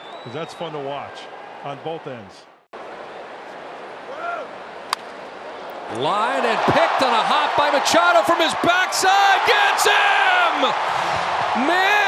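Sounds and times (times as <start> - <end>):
ballpark crowd noise: 0.0 - 12.0
bat cracking a baseball: 4.9 - 5.2
shout from crowd: 6.2 - 12.0.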